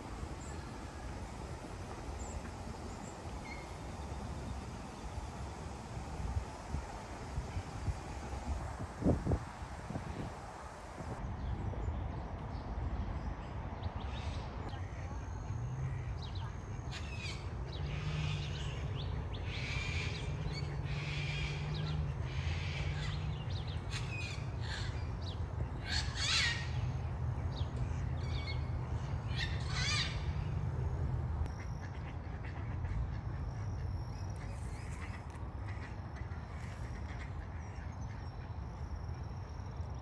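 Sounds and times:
steady low hum: 0:00.0 - 0:11.4.

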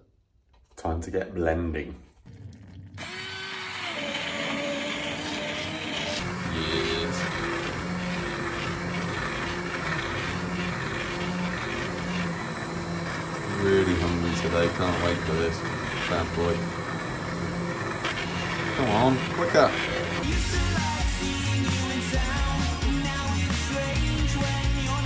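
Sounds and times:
immersion blender churning soup: 0:02.3 - 0:25.0
background music: 0:19.2 - 0:25.0.

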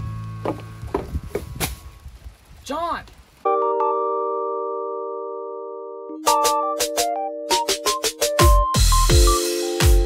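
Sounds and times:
footsteps on wooden boards: 0:00.4 - 0:01.8.

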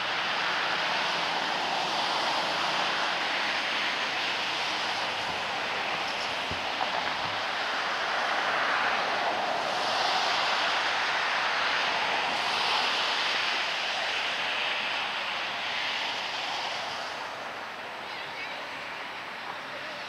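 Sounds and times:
steady rushing noise: 0:00.0 - 0:20.0.

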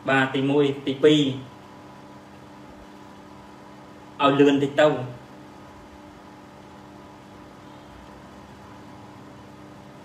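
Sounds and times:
background hiss: 0:00.0 - 0:10.0
faint constant hum: 0:00.0 - 0:10.0.

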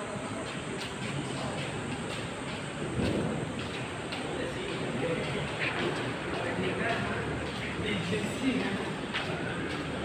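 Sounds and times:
noisy background ambience: 0:00.0 - 0:10.0.

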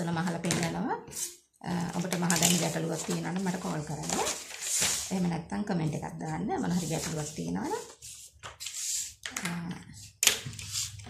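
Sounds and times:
woman talking: 0:00.0 - 0:04.4, 0:05.1 - 0:08.0, 0:09.3 - 0:10.1.

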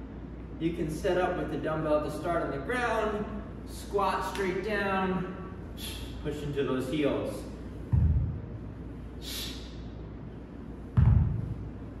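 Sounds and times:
dumbbell thud on rubber floor: 0:07.9 - 0:08.4, 0:11.0 - 0:11.5.

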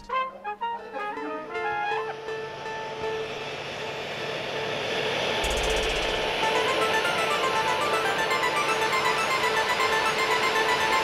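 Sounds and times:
held note of background music: 0:00.0 - 0:11.0
jet aircraft noise: 0:00.0 - 0:11.0.

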